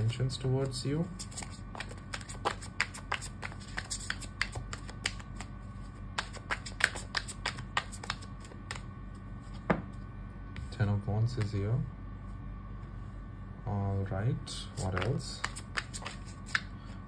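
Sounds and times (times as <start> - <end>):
steady low hum: 0.0 - 17.0
cards being shuffled: 0.6 - 5.5, 6.2 - 8.9, 14.7 - 16.7.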